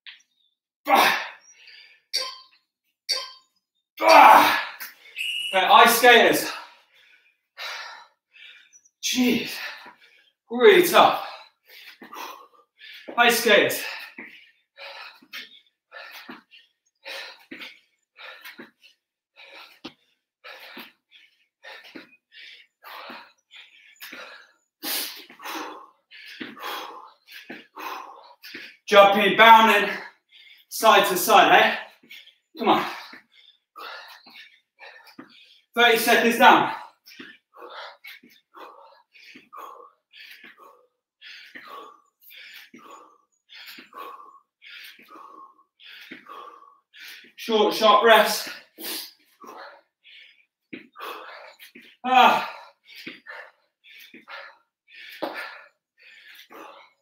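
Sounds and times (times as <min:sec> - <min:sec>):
man panting: 0:00.9 - 0:02.1, 0:04.4 - 0:57.0
man breathing hard: 0:01.0 - 0:02.1, 0:06.2 - 0:28.9, 0:29.7 - 0:57.0
man groaning: 0:04.0 - 0:04.7, 0:52.0 - 0:52.5
man gasping: 0:11.1 - 0:18.8, 0:19.4 - 0:28.9, 0:36.6 - 0:47.4, 0:48.2 - 0:57.0.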